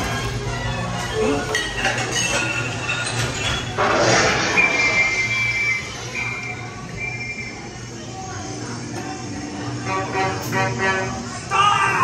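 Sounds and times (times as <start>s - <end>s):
ride car running on track: 0.0s - 12.0s
high squealing tones: 3.8s - 7.7s.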